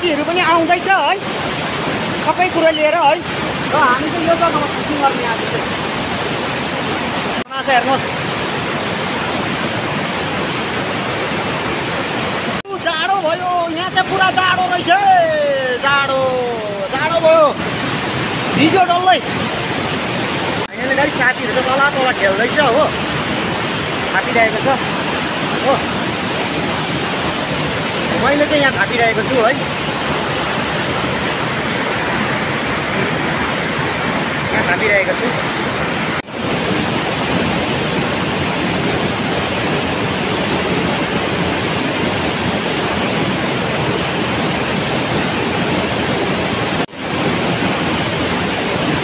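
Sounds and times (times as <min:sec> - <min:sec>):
rushing stream and waterfall: 0:00.0 - 0:49.0.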